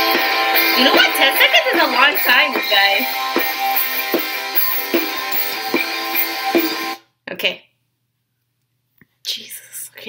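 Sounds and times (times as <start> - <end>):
guitar-led song with drum beat: 0.0 - 7.0.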